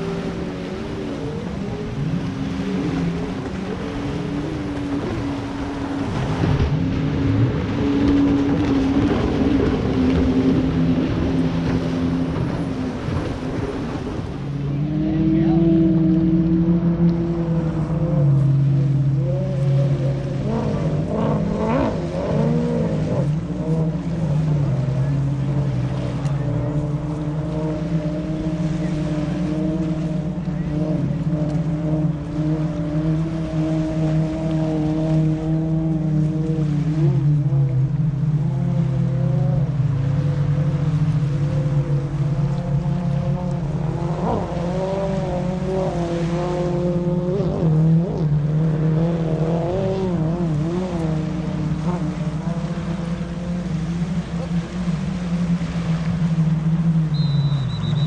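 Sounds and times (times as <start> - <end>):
jet ski engines racing: 0.0 - 58.0
drone of held tones: 51.2 - 58.0.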